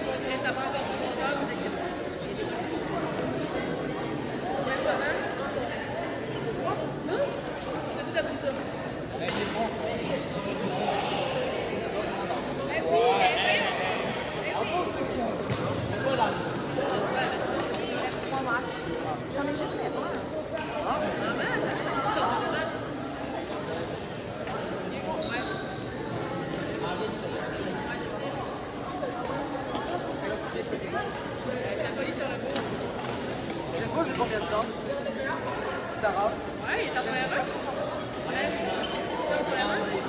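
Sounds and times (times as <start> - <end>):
children chattering: 0.0 - 9.2
voices chattering in gym: 0.0 - 40.0
shoe squeak on gym floor: 25.1 - 25.9, 38.7 - 39.2.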